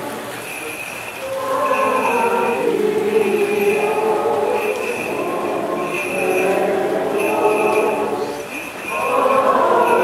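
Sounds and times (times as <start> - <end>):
choir and congregation singing hymn: 1.2 - 10.0.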